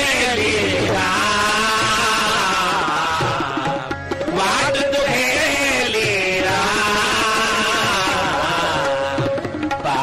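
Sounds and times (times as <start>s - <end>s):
harmonium: 0.0s - 10.0s
tabla strokes: 0.0s - 10.0s.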